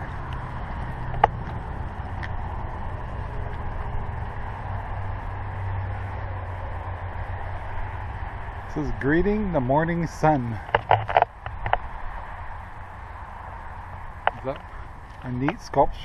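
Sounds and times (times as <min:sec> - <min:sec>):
low rumble with hiss: 0:00.0 - 0:16.0.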